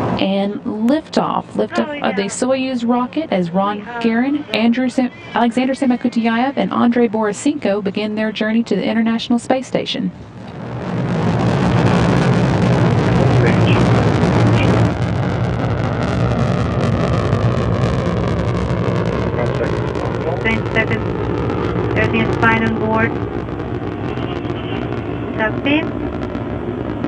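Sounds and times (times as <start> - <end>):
rocket engines rumbling: 0.0 - 27.0.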